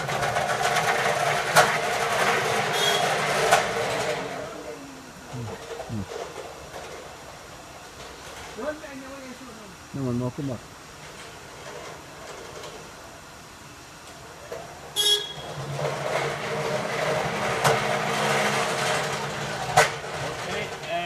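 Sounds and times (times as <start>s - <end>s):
pallet jack horn beep: 2.7s - 3.2s, 15.0s - 15.6s.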